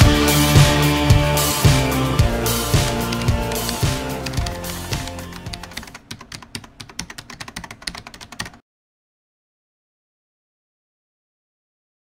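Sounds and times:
background music with beat: 0.0s - 6.1s.

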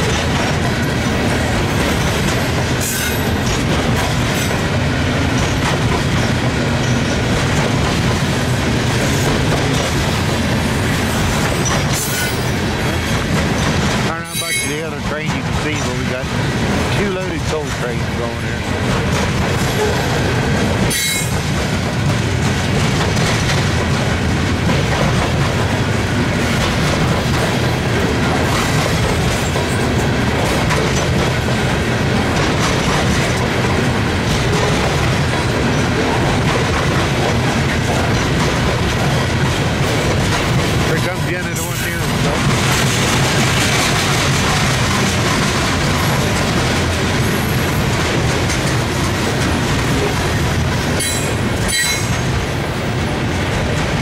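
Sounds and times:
freight train wheels rumbling: 0.0s - 54.0s
high wheel squeal: 51.0s - 52.2s.

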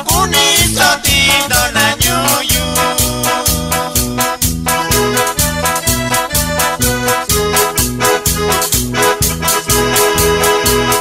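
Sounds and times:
bass: 0.0s - 11.0s
drum kit beat: 0.0s - 11.0s
keyboard melody: 0.0s - 11.0s.

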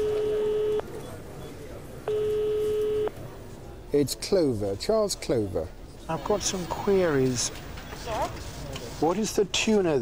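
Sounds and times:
telephone ringing tone: 0.0s - 0.8s, 2.1s - 3.1s.

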